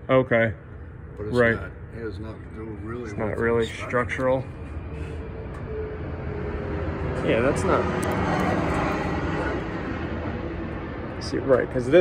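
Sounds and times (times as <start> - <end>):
low hum: 0.0 - 12.0
low mechanical rumble: 0.0 - 12.0.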